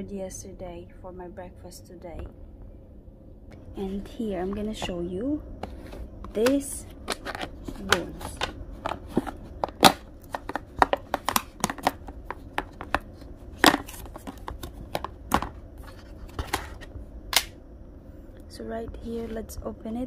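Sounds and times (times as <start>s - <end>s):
plastic container clicking and crackling: 6.3s - 13.0s
plastic lid snapping: 6.3s - 13.0s, 13.6s - 15.6s, 16.4s - 17.5s.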